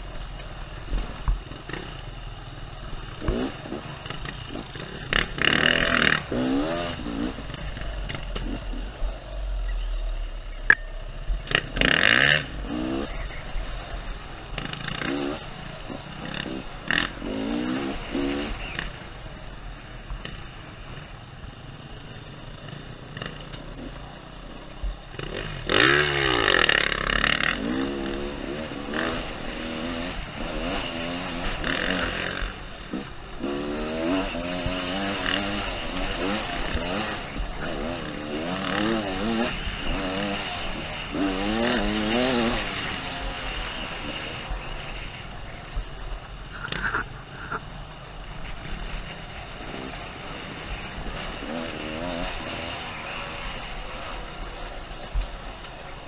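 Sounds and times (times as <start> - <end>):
dirt bike engine revving: 0.0 - 56.0
other dirt bike engines: 0.0 - 56.0.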